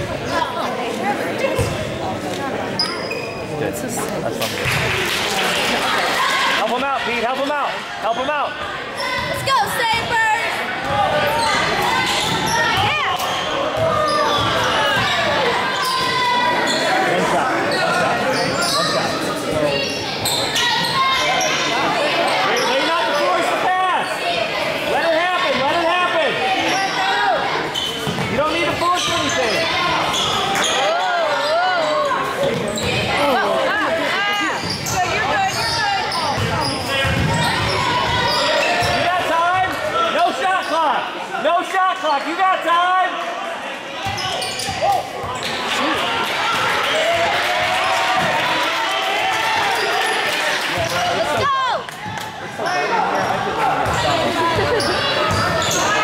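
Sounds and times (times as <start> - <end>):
shoes squeaking: 2.8 - 3.5, 44.0 - 45.6, 54.6 - 56.0
voices calling out: 5.4 - 42.7.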